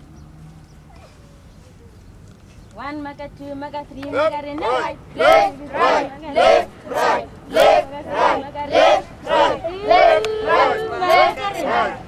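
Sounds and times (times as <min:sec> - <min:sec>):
group chanting in unison: 0:04.2 - 0:12.0.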